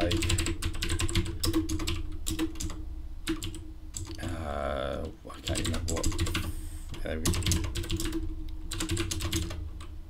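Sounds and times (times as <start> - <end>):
typing on computer keyboard: 0.0 - 4.4, 5.4 - 9.9.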